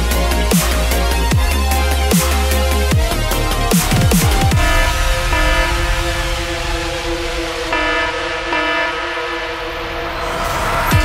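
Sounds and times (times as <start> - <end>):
sustained synth chords: 0.0 - 11.0.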